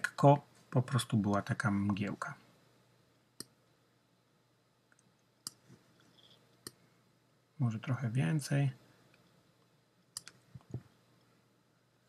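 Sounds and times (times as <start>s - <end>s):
computer mouse clicks: 10.1s - 10.8s.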